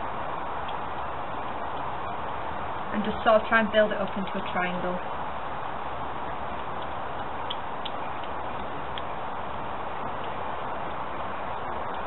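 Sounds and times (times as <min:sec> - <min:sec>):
small fire crackling: 0:00.0 - 0:12.0.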